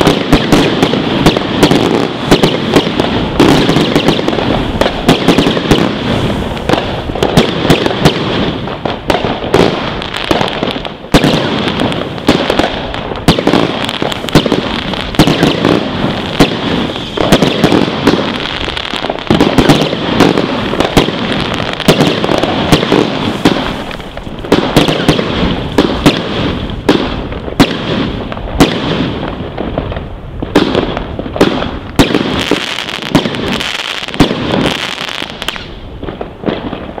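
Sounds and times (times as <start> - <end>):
firework cake barrage of bangs: 0.0 - 37.0.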